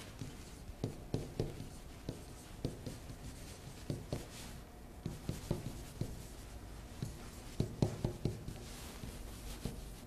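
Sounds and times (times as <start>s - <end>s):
pen scratching on whiteboard: 0.0s - 9.9s
pen tapping on whiteboard: 0.2s - 4.4s, 5.0s - 6.3s, 7.0s - 9.8s.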